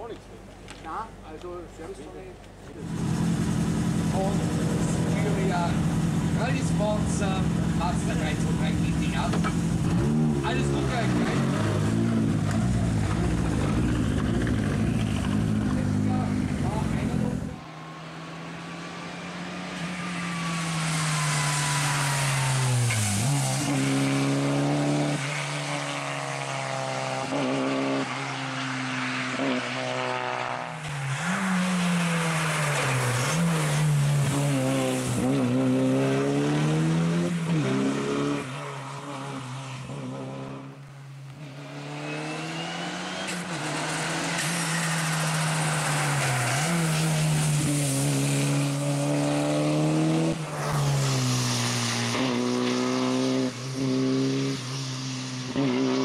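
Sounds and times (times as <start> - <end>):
rally car engine accelerating: 2.7 - 40.8, 41.4 - 56.0.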